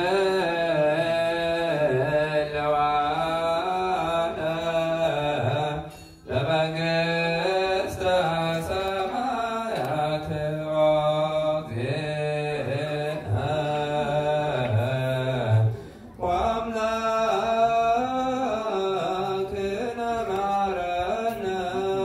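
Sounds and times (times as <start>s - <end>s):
man chanting through loudspeaker: 0.0s - 22.0s.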